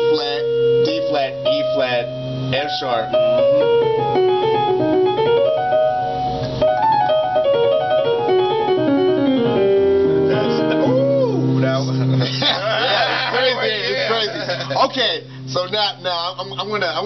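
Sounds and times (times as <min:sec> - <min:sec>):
fast blues piano run: 0:00.0 - 0:17.0.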